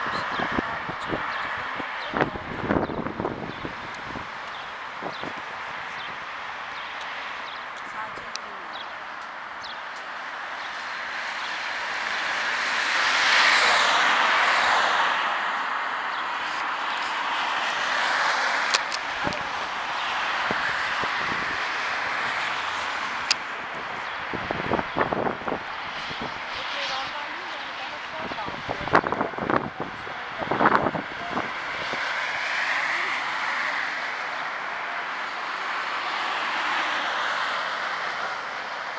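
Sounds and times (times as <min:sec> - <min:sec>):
vehicle passing by: 0:00.0 - 0:38.9.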